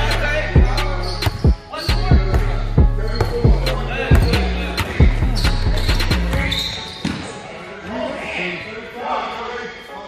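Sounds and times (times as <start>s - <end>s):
bass-heavy music: 0.0s - 6.5s
voices: 0.0s - 10.0s.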